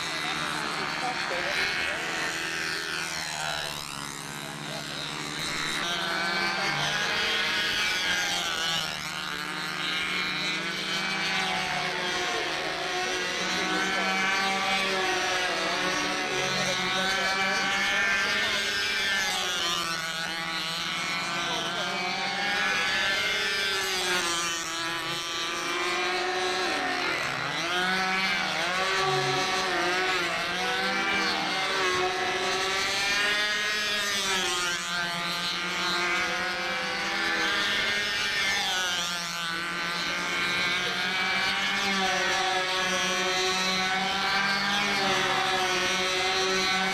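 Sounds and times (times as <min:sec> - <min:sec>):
model plane engines running: 0:00.0 - 0:46.9.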